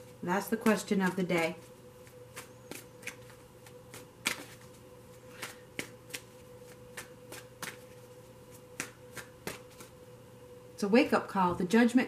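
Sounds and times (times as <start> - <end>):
faint steady hum: 0.0 - 12.0
cards being shuffled: 1.1 - 10.0.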